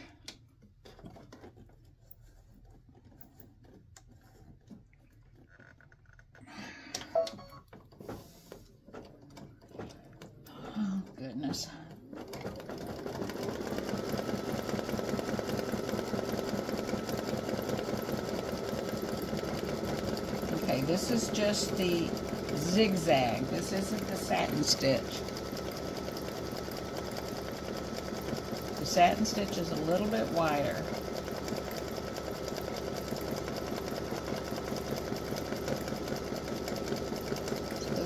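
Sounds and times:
embroidery machine stitching: 0.9s - 4.8s, 7.8s - 38.0s.

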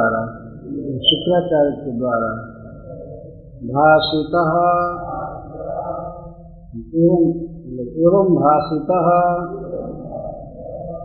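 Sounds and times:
man chanting in sung tone: 0.0s - 11.0s.

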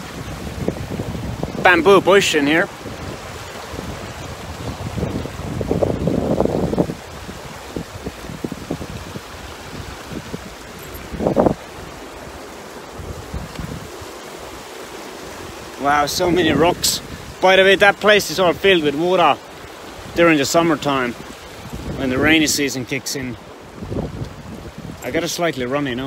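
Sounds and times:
wind buffeting microphone: 0.0s - 17.6s, 19.5s - 22.6s, 23.3s - 25.2s.

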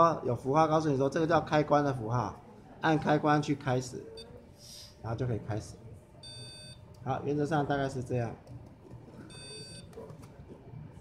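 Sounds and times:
electronic beep: 6.2s - 6.8s, 9.3s - 9.9s.

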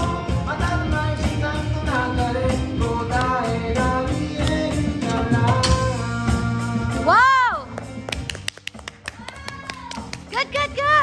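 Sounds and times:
karaoke backing track: 0.0s - 11.0s
hand claps: 7.7s - 10.8s.

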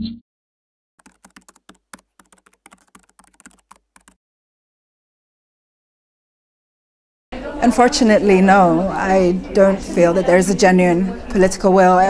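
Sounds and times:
keyboard typing clicks: 1.0s - 4.2s.

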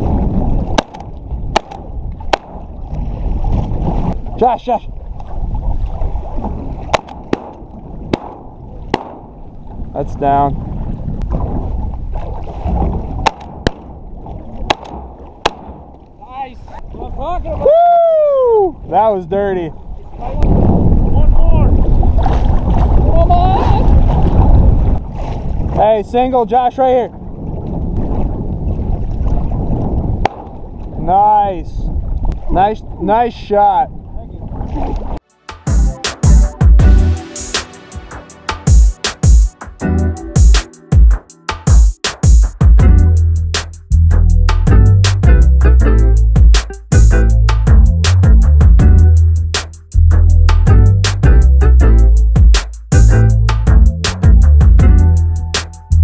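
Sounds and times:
water lapping against boat: 0.0s - 17.8s, 18.4s - 31.2s, 31.8s - 35.3s
wind on microphone: 0.0s - 35.2s
shotgun shots: 6.9s - 9.3s, 14.7s - 15.9s.

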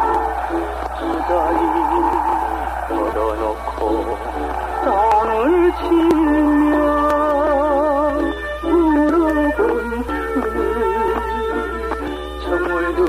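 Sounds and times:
man singing with vibrato: 0.0s - 13.0s.

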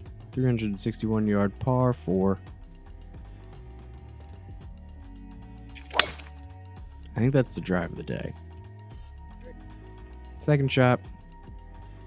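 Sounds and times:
background music: 0.0s - 12.0s
golf club striking ball: 5.8s - 6.4s.

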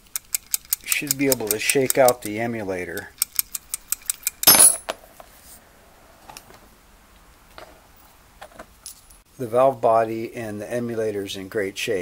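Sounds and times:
metallic clink on bench: 4.4s - 4.9s.

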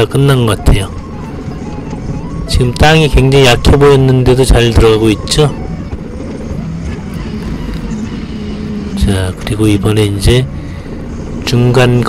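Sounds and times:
forklift engine running: 0.0s - 11.5s.

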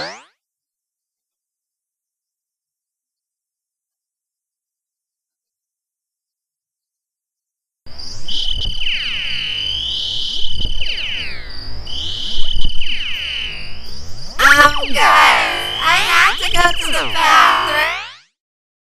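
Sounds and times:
steady high tone: 14.4s - 18.2s
warped cartoon voices and music: 14.4s - 18.2s.

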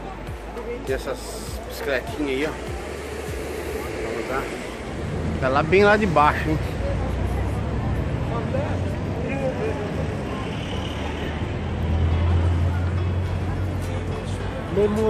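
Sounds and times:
faint pedestrian chatter: 0.0s - 15.0s
traffic rumble: 0.0s - 15.0s.

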